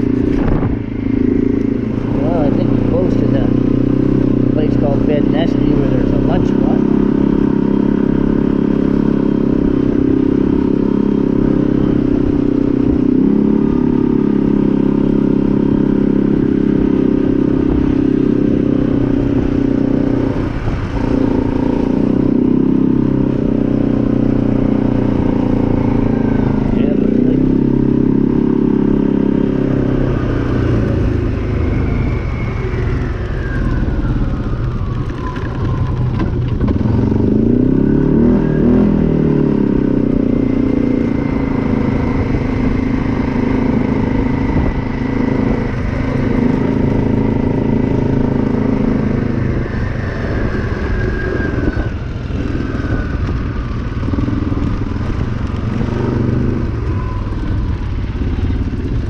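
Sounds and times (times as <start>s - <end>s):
quad bike engine running: 0.0s - 59.0s.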